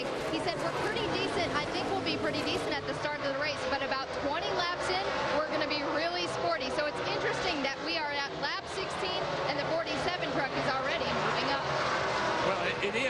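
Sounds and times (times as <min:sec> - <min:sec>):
commentator speaking: 0:00.0 - 0:11.7, 0:12.4 - 0:13.0
race truck engines droning: 0:00.0 - 0:13.0.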